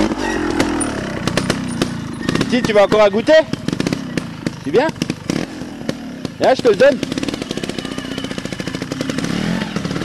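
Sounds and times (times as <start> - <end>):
motorcycle engine at low revs: 0.0 - 10.0.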